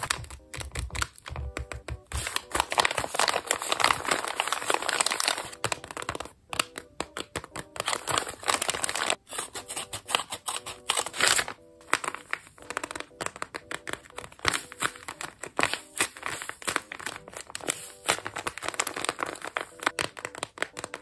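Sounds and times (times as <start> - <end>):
paper envelope crinkling: 0.0 - 21.0
scissors cutting paper: 0.0 - 21.0.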